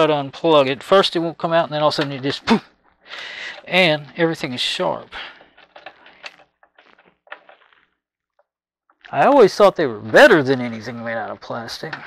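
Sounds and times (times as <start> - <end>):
cable connectors clicking and rustling: 3.1 - 7.8.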